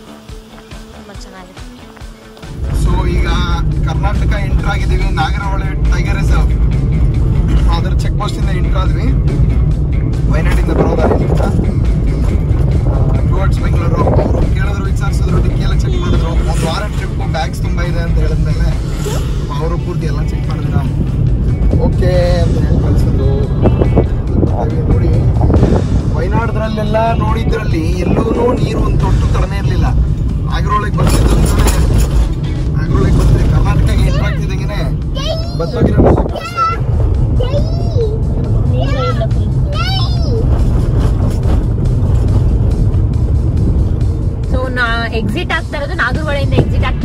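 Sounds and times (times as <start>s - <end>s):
car engine and tyres rumbling: 0.0s - 47.0s
people talking: 1.0s - 1.6s, 10.3s - 11.6s, 13.2s - 18.8s, 19.5s - 21.0s, 21.7s - 25.3s, 26.2s - 32.0s, 32.8s - 36.8s, 37.4s - 40.4s, 44.5s - 47.0s.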